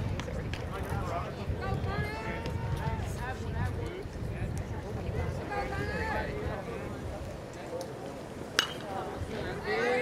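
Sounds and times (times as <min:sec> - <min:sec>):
bat hitting ball ping: 0:08.6 - 0:08.9.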